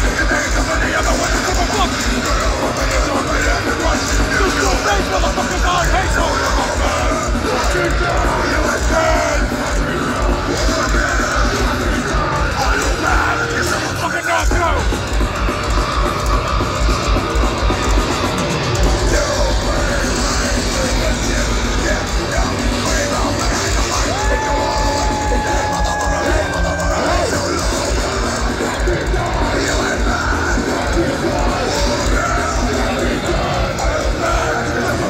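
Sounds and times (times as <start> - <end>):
shouted vocals: 0.0 - 15.0, 18.8 - 35.0
distorted guitars: 0.0 - 35.0
heavy metal band playing live: 0.0 - 35.0
pounding drums: 0.0 - 35.0.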